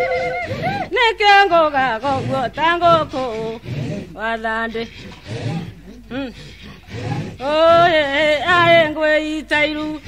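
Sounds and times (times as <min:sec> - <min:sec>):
rising and falling vocal call: 0:00.0 - 0:00.9
voices singing a song: 0:00.0 - 0:06.3, 0:06.9 - 0:10.0.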